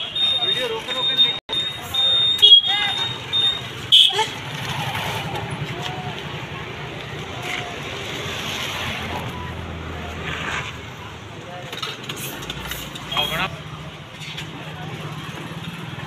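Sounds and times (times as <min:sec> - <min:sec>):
street traffic: 0:00.0 - 0:16.0.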